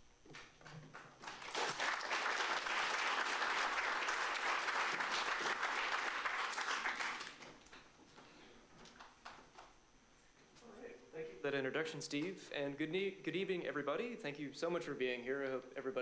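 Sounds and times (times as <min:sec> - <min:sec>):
audience applauding: 0:01.2 - 0:07.5.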